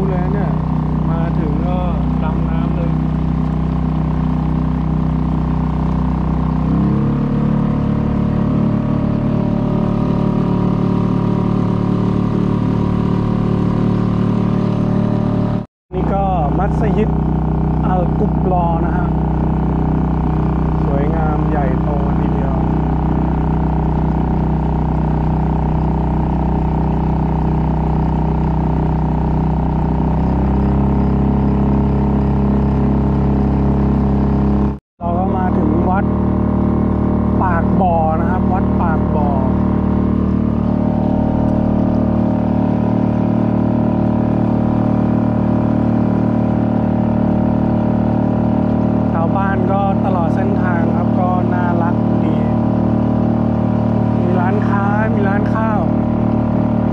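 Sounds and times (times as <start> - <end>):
outboard motor running: 0.0 - 56.9.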